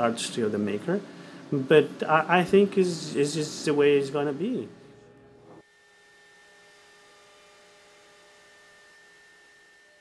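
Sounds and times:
faint hum: 0:00.0 - 0:05.6.

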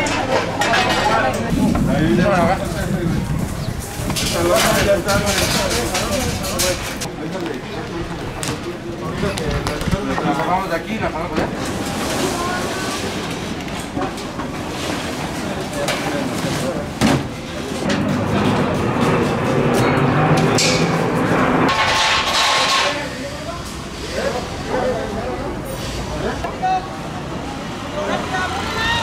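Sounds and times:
people's voices: 0:00.0 - 0:29.0
steel tubing frames being dismantled: 0:21.7 - 0:23.1.

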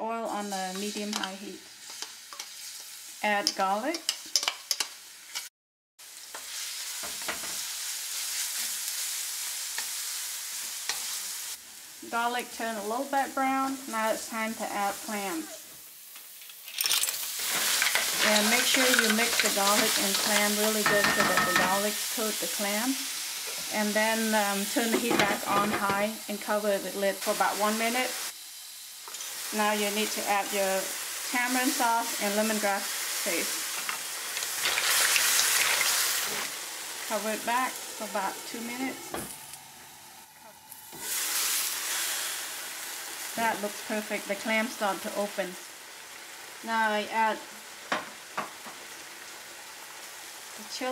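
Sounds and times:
loud sizzle: 0:00.0 - 0:50.9
garlic sizzling in oil: 0:00.1 - 0:50.9
shells clattering on wok: 0:16.4 - 0:21.8.

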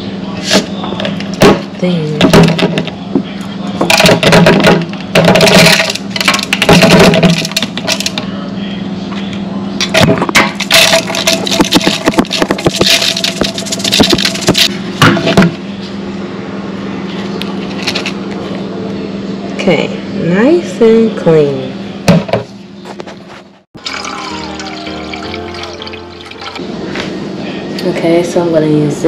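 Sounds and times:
rice rattling in metal strainer: 0:10.6 - 0:14.7.

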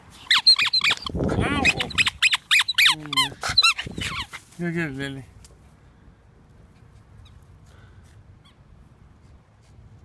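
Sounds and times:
squeaky toy ball squeaks: 0:00.2 - 0:04.4.

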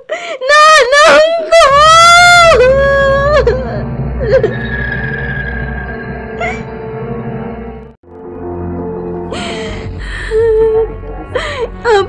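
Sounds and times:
low steady music bed: 0:06.2 - 0:12.0.

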